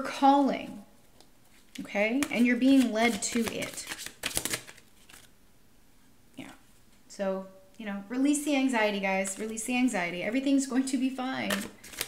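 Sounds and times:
cards shuffling flutter: 0:02.2 - 0:05.3, 0:11.5 - 0:12.0.

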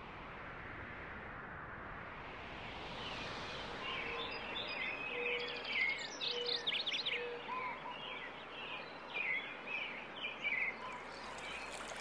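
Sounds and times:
forest ambience hiss: 0:02.4 - 0:07.0.

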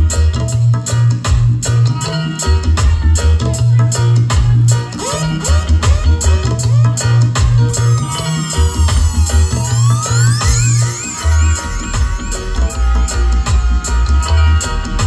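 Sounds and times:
reggae music through sound system: 0:00.0 - 0:15.0
sweeping rising and falling tones: 0:07.8 - 0:13.3.

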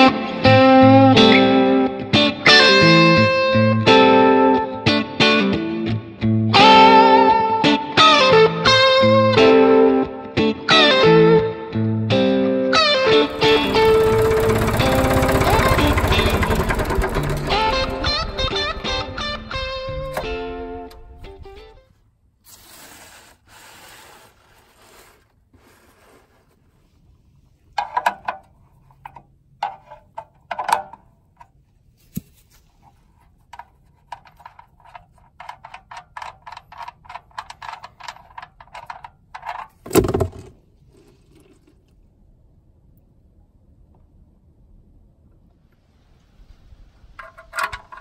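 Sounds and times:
blues guitar music: 0:00.0 - 0:21.9
drain plug threads scraping: 0:13.1 - 0:19.3, 0:32.8 - 0:41.8, 0:47.2 - 0:48.0
tractor engine running: 0:13.1 - 0:21.8, 0:47.1 - 0:48.0
oil gushing out: 0:13.2 - 0:20.5.

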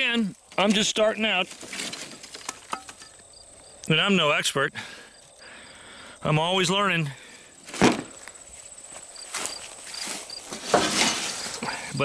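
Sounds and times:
insect chirping: 0:00.0 - 0:12.0
wooden board turned over: 0:07.7 - 0:08.2, 0:10.1 - 0:11.6.

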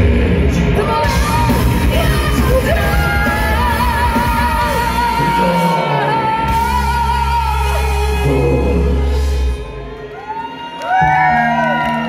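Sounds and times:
heavy metal band playing live: 0:00.0 - 0:09.9
distorted guitars: 0:00.0 - 0:12.0.

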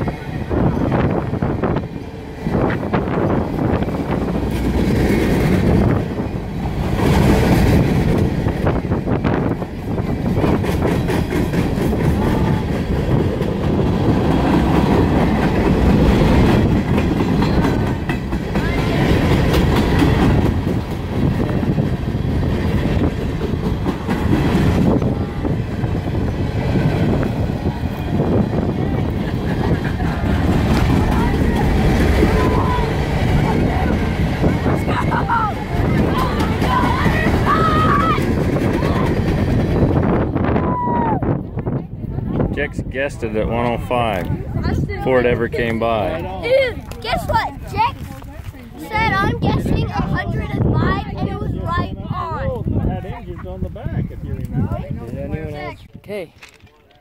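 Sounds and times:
freight train wheels rumbling: 0:00.0 - 0:57.0.

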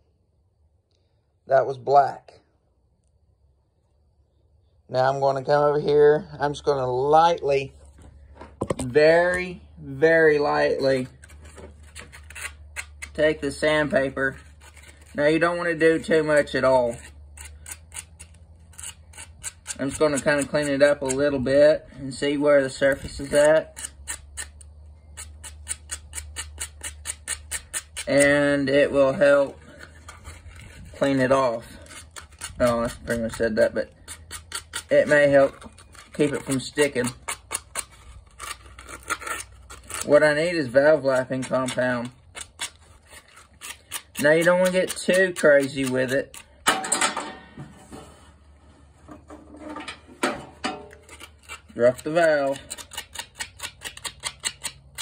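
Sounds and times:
sandpaper scratching on metal: 0:10.4 - 0:21.3, 0:25.2 - 0:46.4, 0:51.0 - 0:55.0.

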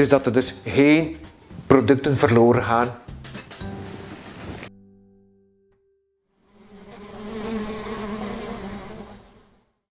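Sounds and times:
honeybees buzzing: 0:06.4 - 0:09.8.

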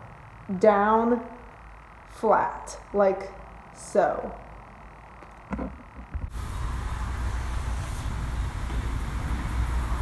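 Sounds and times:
machinery humming and hissing: 0:06.1 - 0:10.0.

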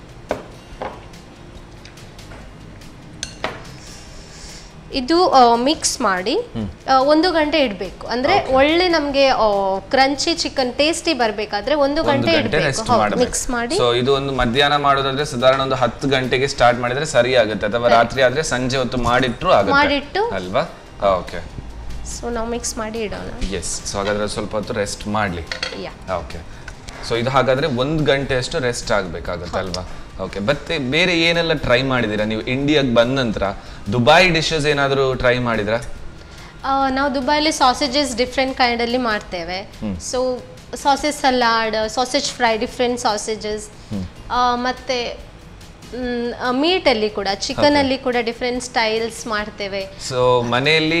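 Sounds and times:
spoon clinking against glass bowl: 0:03.2 - 0:03.6
plates and cutlery clinking: 0:03.2 - 0:03.8, 0:25.4 - 0:25.8
person speaking: 0:06.6 - 0:06.8, 0:08.1 - 0:09.0, 0:12.0 - 0:14.0, 0:17.8 - 0:18.4, 0:19.0 - 0:20.3, 0:39.8 - 0:40.0, 0:43.9 - 0:44.2, 0:47.5 - 0:48.0, 0:50.0 - 0:51.0.

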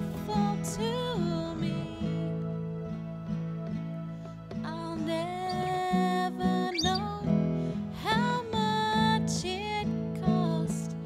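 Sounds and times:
woman singing into a microphone: 0:00.0 - 0:02.6, 0:04.6 - 0:11.0
keyboard: 0:00.0 - 0:11.0.

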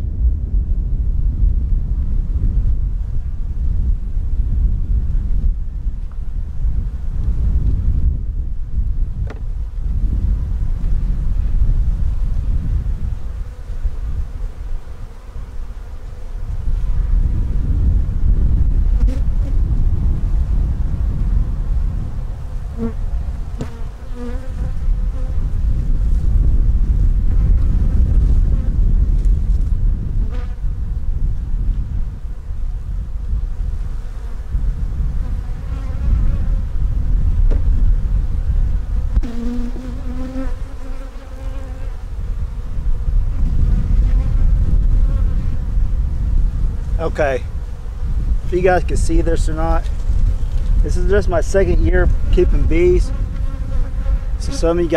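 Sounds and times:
light knocks of hive frames: 0:09.2 - 0:09.5, 0:23.6 - 0:24.3, 0:37.4 - 0:37.7
honeybees buzzing: 0:13.1 - 0:17.2, 0:22.5 - 0:25.6, 0:38.9 - 0:42.2, 0:50.0 - 0:54.9.

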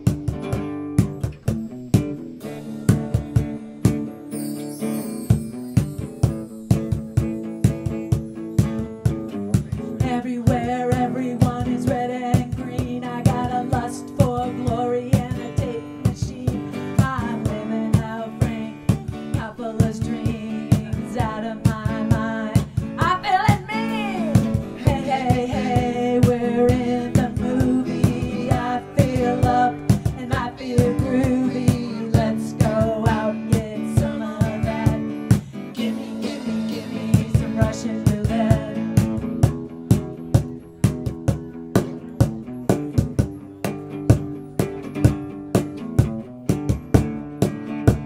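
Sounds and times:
steady drum beat: 0:00.0 - 0:04.2, 0:05.4 - 0:48.0
acoustic guitar strumming: 0:00.0 - 0:48.0
person singing: 0:09.6 - 0:39.2.

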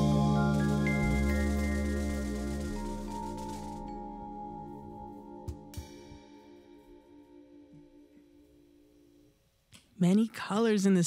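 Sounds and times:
electric guitar and keyboard chord: 0:00.0 - 0:06.2.

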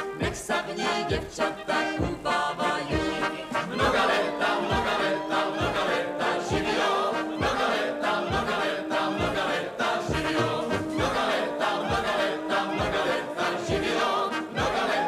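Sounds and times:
brass band music: 0:00.0 - 0:15.0
group of voices singing: 0:00.0 - 0:15.0.

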